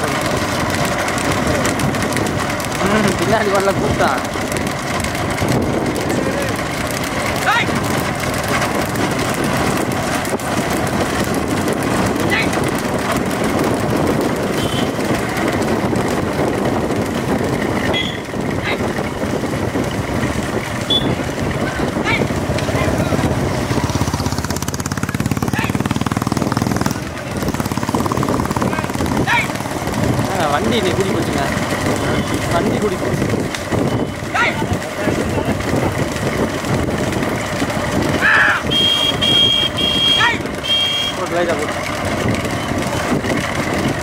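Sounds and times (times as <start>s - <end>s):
motorcycle engines running: 0.0s - 44.0s
men shouting: 6.0s - 8.7s, 12.0s - 12.6s, 18.5s - 19.0s, 21.5s - 23.3s, 25.4s - 25.9s, 28.6s - 33.1s, 34.1s - 35.6s, 38.0s - 41.4s.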